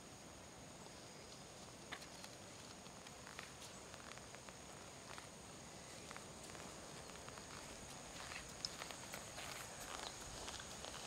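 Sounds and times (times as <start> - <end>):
footsteps on grass: 6.0 - 11.0.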